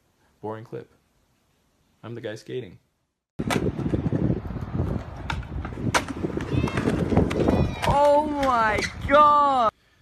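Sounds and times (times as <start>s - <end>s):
skateboards clacking on ground: 3.4s - 9.3s
skateboard wheels rolling on concrete: 3.4s - 9.8s.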